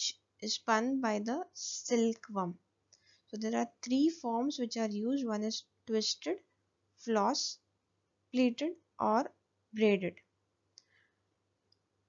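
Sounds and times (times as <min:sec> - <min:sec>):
person speaking: 0:00.0 - 0:02.6.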